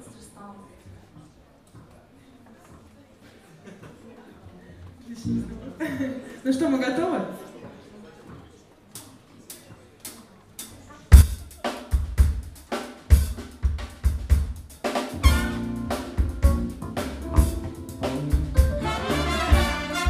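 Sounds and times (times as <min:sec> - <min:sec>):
jazz band with horns: 0:05.2 - 0:05.8, 0:11.1 - 0:20.0
drum kit kick and snare: 0:11.1 - 0:20.0.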